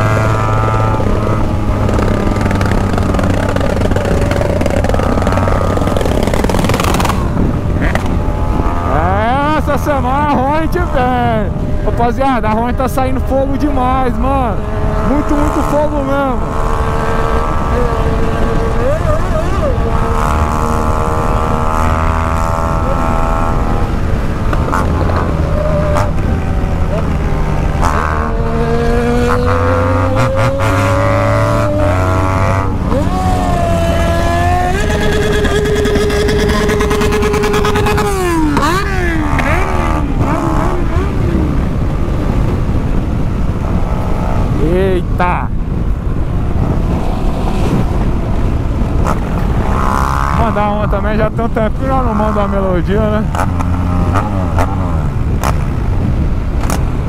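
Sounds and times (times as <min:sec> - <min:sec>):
motorcycle engine at speed: 0:00.0 - 0:57.0
wind rush: 0:00.0 - 0:57.0.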